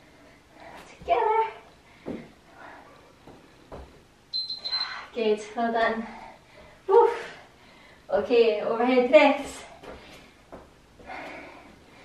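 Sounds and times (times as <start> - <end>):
woman breathing hard: 6.0 - 8.1, 9.8 - 12.0.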